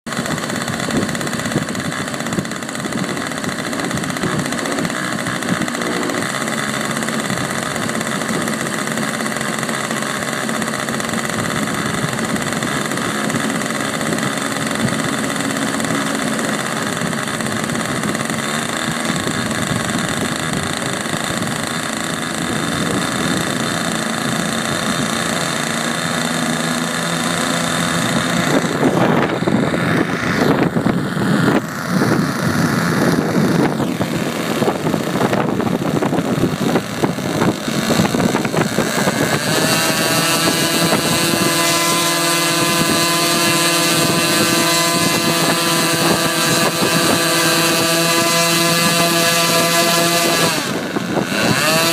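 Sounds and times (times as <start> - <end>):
model plane engine idling: 0.0 - 51.9.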